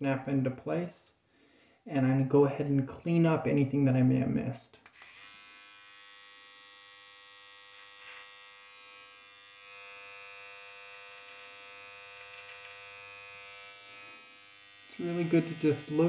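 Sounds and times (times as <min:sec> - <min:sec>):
electric trimmer buzzing: 0:04.9 - 0:16.0.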